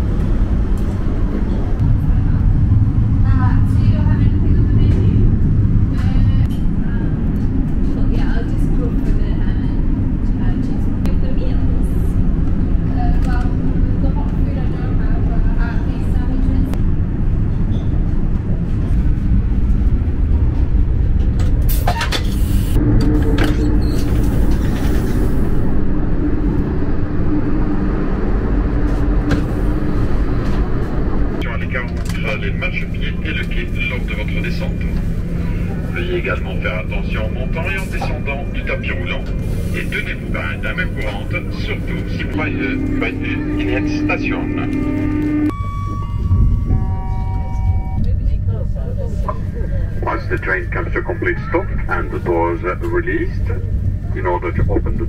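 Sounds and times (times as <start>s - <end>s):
steady multi-tone hum: 0.0s - 55.0s
train rumble from inside carriage: 0.0s - 55.0s
faint passenger voices: 3.2s - 16.8s, 31.4s - 45.5s, 47.5s - 55.0s.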